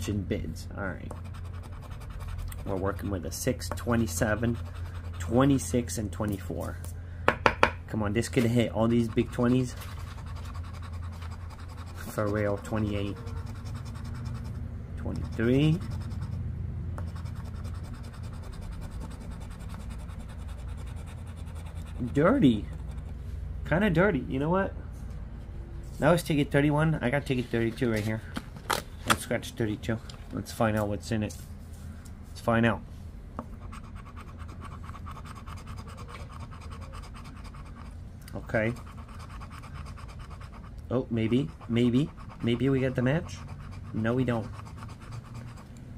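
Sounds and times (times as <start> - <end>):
coin scratching lottery ticket: 1.1 - 6.2, 8.4 - 16.4, 17.0 - 23.2, 33.6 - 45.7.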